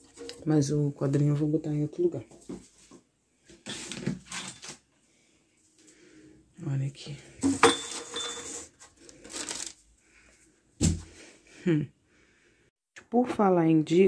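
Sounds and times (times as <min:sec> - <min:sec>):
ringing glass clink: 0:07.6 - 0:08.5.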